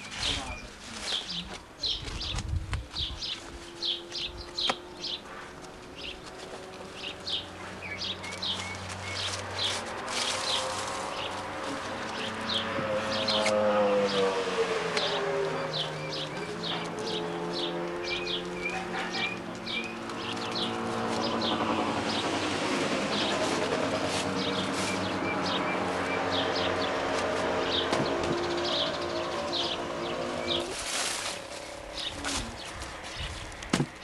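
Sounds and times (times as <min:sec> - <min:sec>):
small birds chirping: 0:00.0 - 0:33.7.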